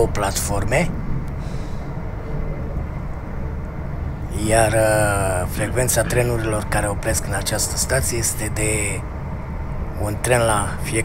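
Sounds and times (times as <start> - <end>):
faint steady hum: 0.0 - 11.0
train rumble inside cabin: 0.0 - 11.0.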